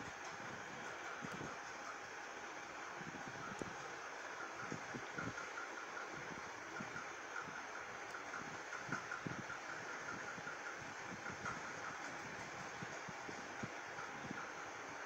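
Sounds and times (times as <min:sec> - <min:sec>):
steady background noise: 0:00.0 - 0:15.0.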